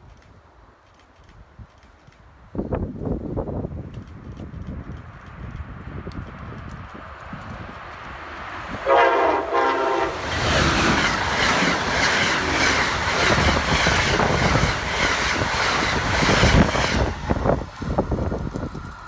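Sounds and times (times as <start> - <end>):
train wheel and rail noise: 0.0 - 19.0
wind rush: 2.4 - 19.0
train horn blast: 8.7 - 10.4.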